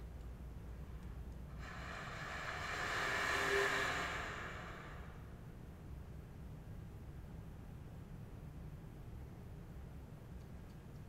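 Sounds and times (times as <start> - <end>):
breathy saxophone air tone: 1.6 - 5.4.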